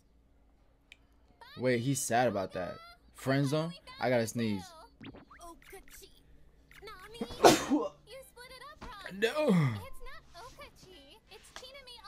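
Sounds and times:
man sneezing: 0:07.3 - 0:08.0.

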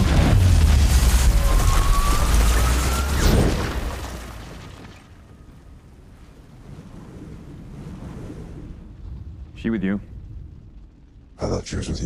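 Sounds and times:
low wind-like rumble: 0:00.0 - 0:12.0.

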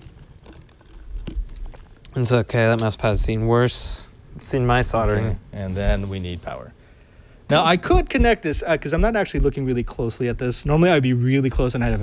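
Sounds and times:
small clicks and rustles: 0:00.0 - 0:02.1.

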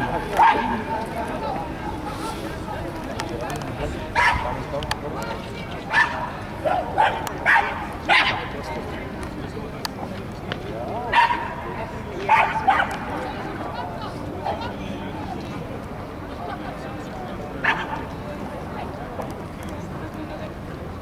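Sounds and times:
murmur of voices: 0:00.0 - 0:21.0
dog barking: 0:00.4 - 0:00.8, 0:04.2 - 0:04.4, 0:05.9 - 0:08.4, 0:11.1 - 0:11.5, 0:12.3 - 0:13.0.

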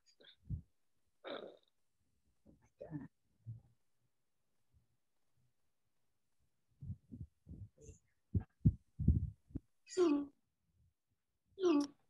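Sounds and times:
muffled low thumps: 0:06.8 - 0:09.7.

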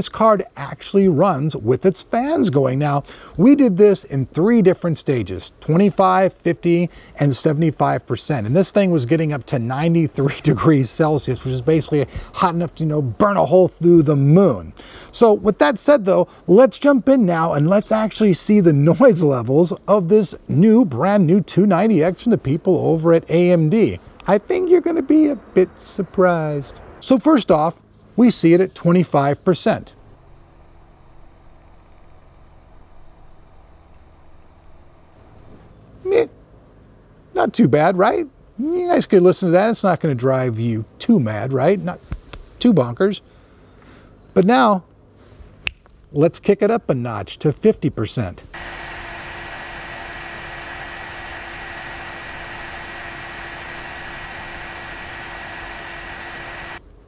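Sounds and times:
cooling fan rushing air: 0:00.0 - 0:37.5, 0:48.2 - 0:57.0
cooling fan whooshing hum: 0:26.3 - 0:37.5, 0:48.2 - 0:57.0.

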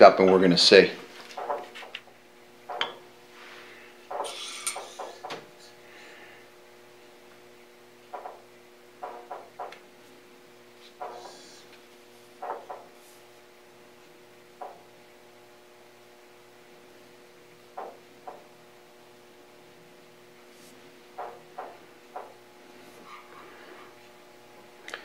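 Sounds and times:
steady low hum: 0:00.0 - 0:25.0
metal scraping: 0:22.8 - 0:24.0.

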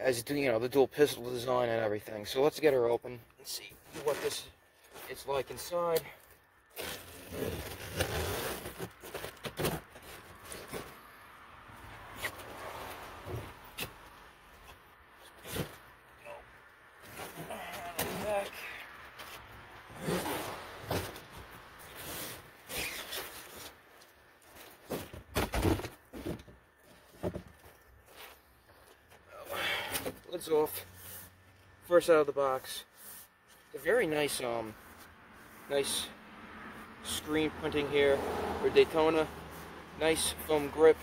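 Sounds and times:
cardboard scraping and tearing: 0:06.7 - 0:11.2, 0:15.2 - 0:15.8, 0:19.9 - 0:23.8.

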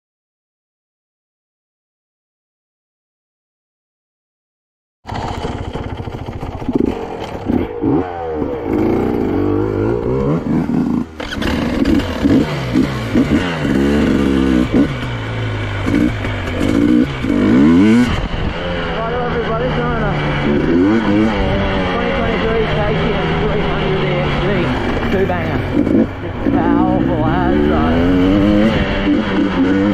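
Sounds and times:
two-stroke motorcycle engine revving: 0:05.1 - 0:29.9.

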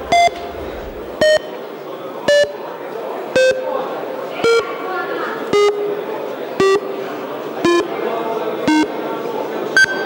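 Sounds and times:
descending short beeps: 0:00.0 - 0:00.6, 0:05.6 - 0:06.0, 0:06.6 - 0:07.0, 0:07.6 - 0:07.9, 0:08.7 - 0:08.9, 0:09.8 - 0:10.0
higher final beep: 0:00.0 - 0:00.6
murmur of voices: 0:00.0 - 0:10.0.

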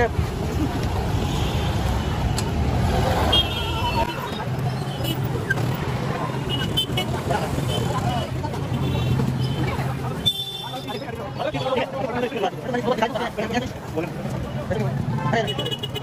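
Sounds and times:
crowd chatter: 0:00.0 - 0:16.0
scooters and rickshaws running: 0:00.0 - 0:16.0.

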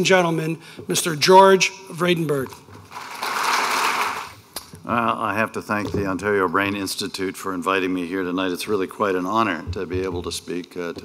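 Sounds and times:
audience applauding: 0:02.9 - 0:04.4.

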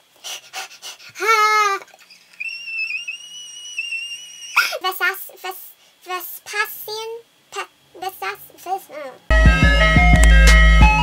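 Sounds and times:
high wavering squeal: 0:02.0 - 0:04.6
thin high whistle-like tone: 0:02.1 - 0:04.6.

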